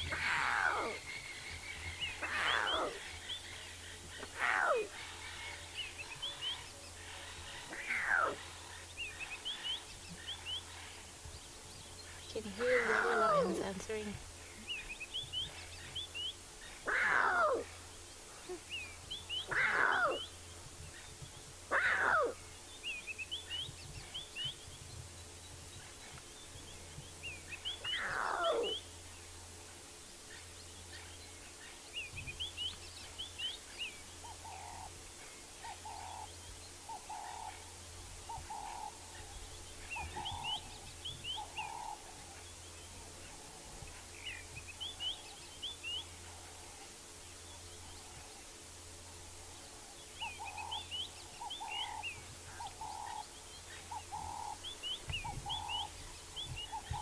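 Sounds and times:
small birds twittering: 0:00.0 - 0:57.0
lion cub mewing: 0:04.2 - 0:05.0, 0:12.6 - 0:13.6, 0:16.8 - 0:17.7, 0:19.5 - 0:20.3, 0:21.7 - 0:22.4, 0:27.9 - 0:28.8.

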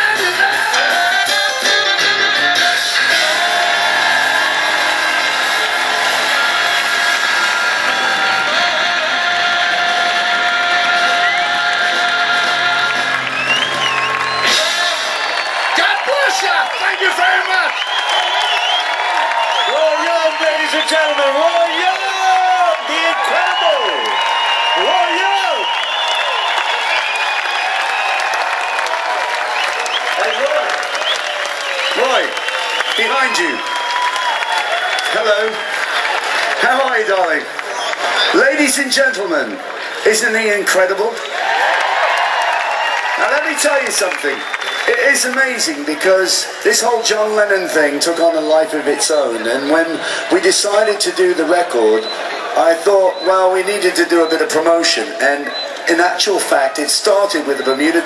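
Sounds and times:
live band music: 0:00.0 - 0:16.4
crowd cheering and whooping: 0:00.0 - 0:58.0
audience clapping: 0:02.4 - 0:58.0
people shouting: 0:03.0 - 0:12.7
high whistling: 0:13.2 - 0:15.9, 0:16.8 - 0:22.0, 0:23.4 - 0:28.8.

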